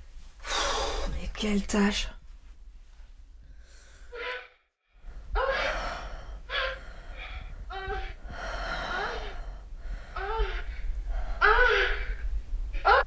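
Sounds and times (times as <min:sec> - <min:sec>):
woman moaning and gasping: 0:05.3 - 0:12.2.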